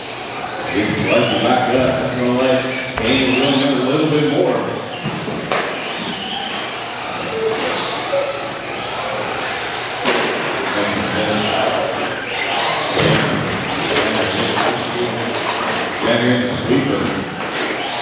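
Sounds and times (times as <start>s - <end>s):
electric toy car motors whining: 5.8s - 10.0s, 10.6s - 18.0s.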